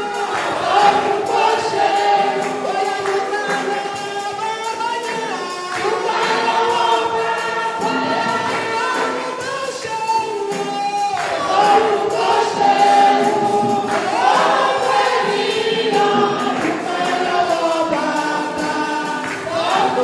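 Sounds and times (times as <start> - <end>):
woman singing gospel song: 0.0 - 4.5, 5.2 - 10.0, 11.2 - 20.0
backing music: 0.0 - 20.0
backing voices singing along: 0.0 - 20.0.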